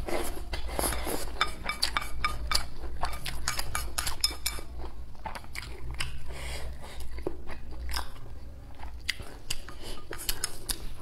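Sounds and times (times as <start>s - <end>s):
person chewing food: 0.0s - 11.0s
wet mouth clicks: 9.1s - 10.9s.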